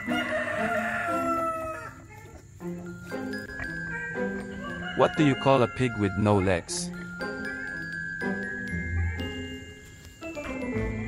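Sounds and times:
rooster crowing: 0.0 - 2.2, 4.2 - 6.7
light background music: 0.0 - 11.0.

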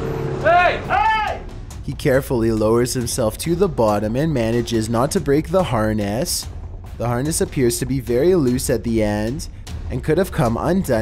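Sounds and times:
man shouting: 0.4 - 1.5.

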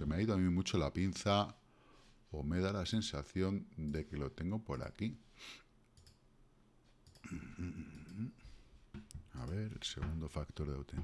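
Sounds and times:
faint computer mouse clicks: 5.9 - 6.2.

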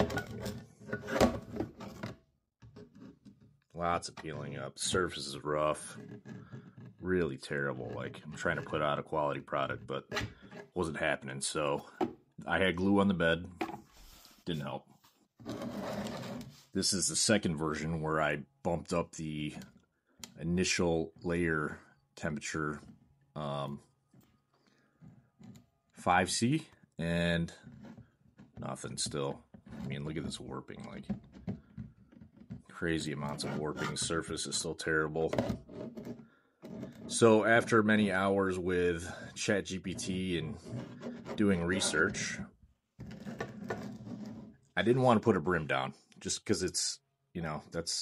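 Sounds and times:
plastic part scraping on plate: 0.0 - 2.1, 5.8 - 7.0, 15.4 - 16.6, 35.3 - 37.2, 40.0 - 44.6.

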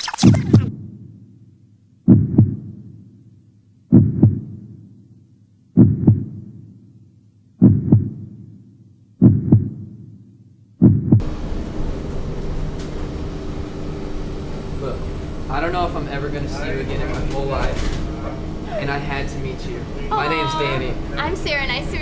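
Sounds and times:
heartbeat thumps: 2.0 - 2.9, 3.9 - 4.8, 5.8 - 6.6, 7.6 - 8.5, 9.2 - 10.0, 10.8 - 11.2
bus interior hum: 11.2 - 22.0.

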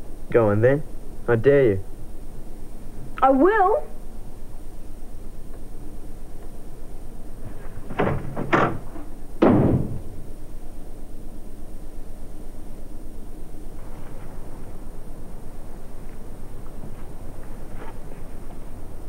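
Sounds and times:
sharp clacks of door: 7.9 - 10.1
door closing bang: 7.9 - 10.2.

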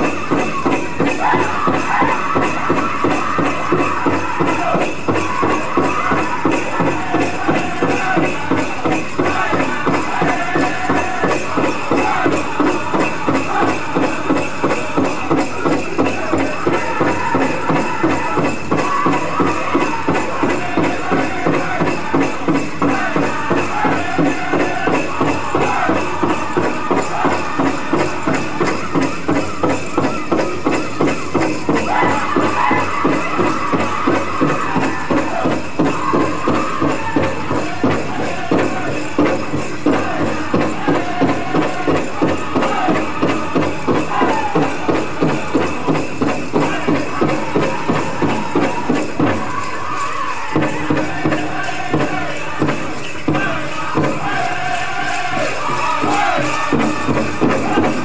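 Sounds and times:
big drum beating: 0.0 - 58.0
drum group singing: 0.0 - 58.0
jingling bells: 0.0 - 58.0.

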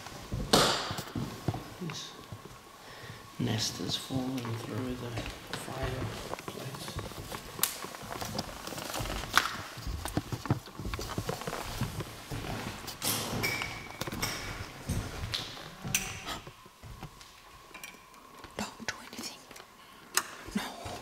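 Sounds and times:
footsteps on bare floor: 0.0 - 17.4
handheld camera knocks and bumps: 6.4 - 12.5.

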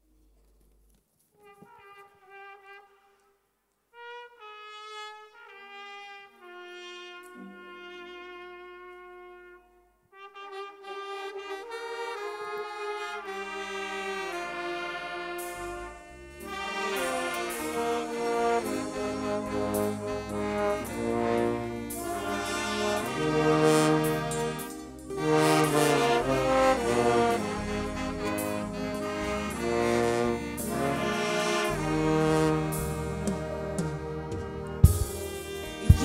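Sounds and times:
brass band playing a tune: 1.4 - 3.2, 3.9 - 36.0
low bass notes: 15.4 - 36.0.

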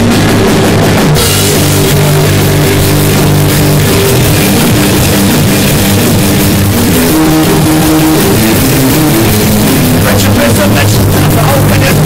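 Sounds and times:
bass guitar notes: 0.0 - 12.0
drums and cymbals: 0.0 - 12.0
electric guitar: 0.0 - 12.0.

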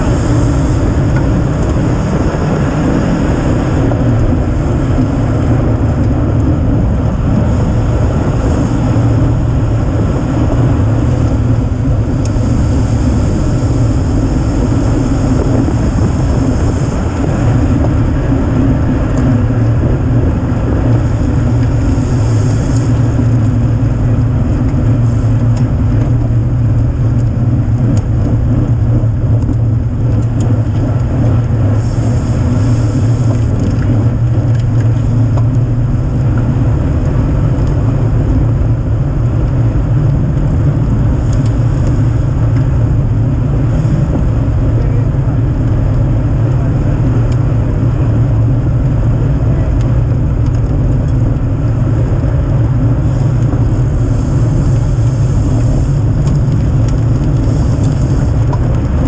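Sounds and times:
bicycle tyre roar: 0.0 - 59.0
wind rush on microphone: 0.0 - 59.0.

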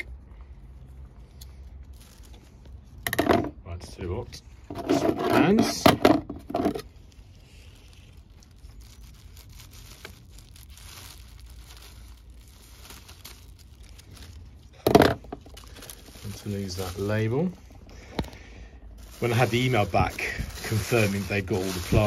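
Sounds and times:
faint handling noise: 0.0 - 22.0
plastic bag crinkling: 0.8 - 3.6, 4.6 - 22.0.

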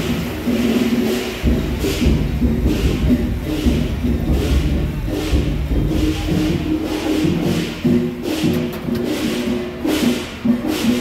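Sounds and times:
cymbal crashes: 0.0 - 11.0.

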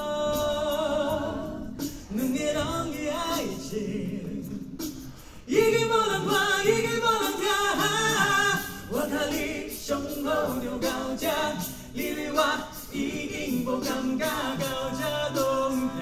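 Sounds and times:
vocal group singing a cappella: 0.0 - 16.0.

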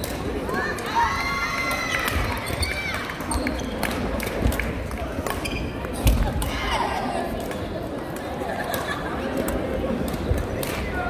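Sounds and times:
shoes squeaking on court: 5.3 - 6.1.

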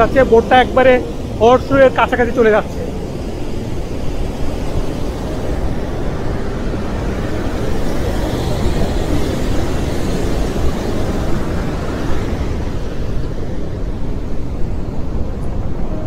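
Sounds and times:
waterfall rushing: 0.0 - 16.0.

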